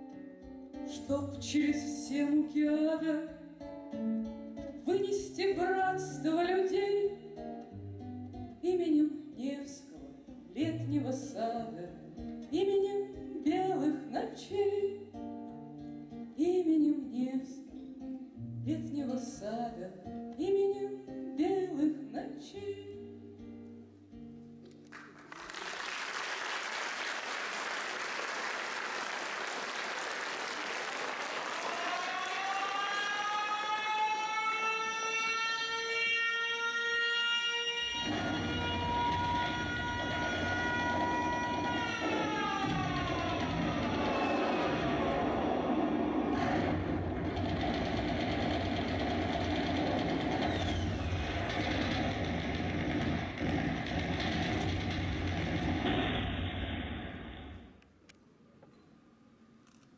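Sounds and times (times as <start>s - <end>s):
air-raid siren wailing: 31.5s - 47.6s.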